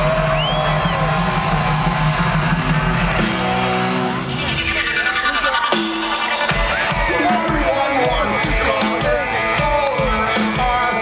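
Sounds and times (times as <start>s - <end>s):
live rock band with distorted guitars: 0.0s - 11.0s.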